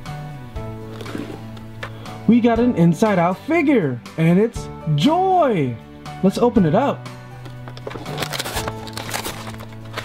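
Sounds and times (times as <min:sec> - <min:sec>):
background music: 0:00.0 - 0:10.0
plastic packaging crinkling: 0:07.6 - 0:10.0.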